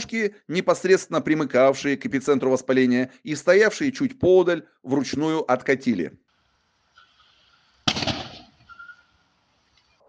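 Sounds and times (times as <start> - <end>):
faint outdoor background: 0.0 - 10.0
sharp bang: 7.9 - 8.5.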